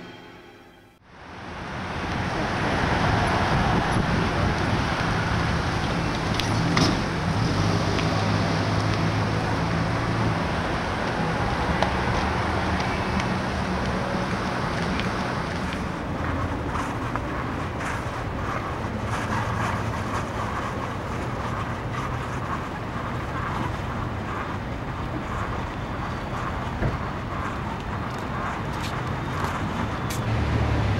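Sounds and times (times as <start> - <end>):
road traffic hum: 1.0 - 30.9.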